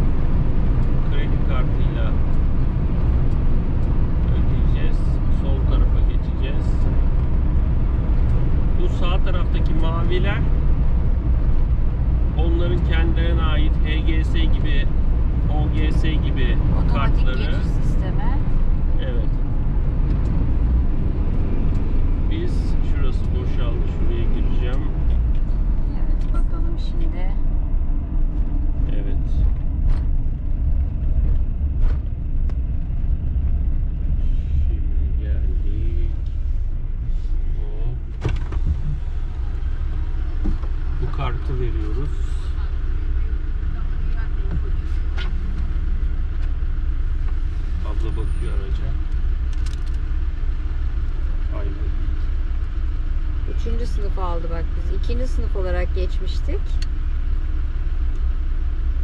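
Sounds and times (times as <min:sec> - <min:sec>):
van engine rumble: 0:00.0 - 0:59.0
voices: 0:04.3 - 0:06.8, 0:12.4 - 0:19.3, 0:22.3 - 0:25.1, 0:25.9 - 0:27.4, 0:40.4 - 0:45.4, 0:47.8 - 0:49.1, 0:51.4 - 0:52.1, 0:53.5 - 0:56.8.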